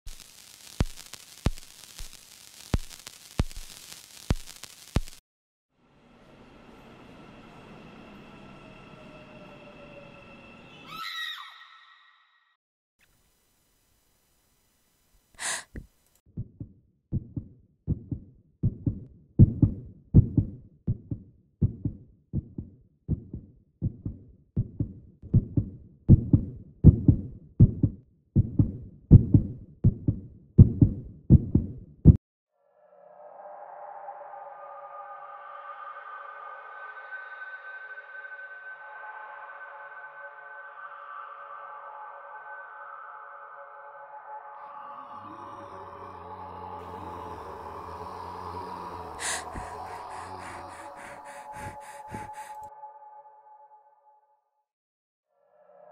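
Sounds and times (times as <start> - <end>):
deep thumps: 16.4 - 32.2
droning music pad: 33.3 - 53.5
low rumble: 45.4 - 52.5.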